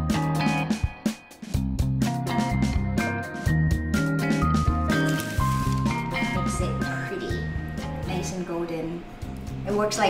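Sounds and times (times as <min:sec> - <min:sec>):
instrumental music with bass line: 0:00.0 - 0:08.3.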